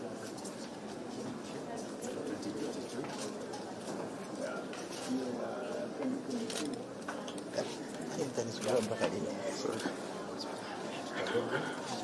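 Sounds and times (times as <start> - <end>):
murmur of people talking: 0.0 - 12.0.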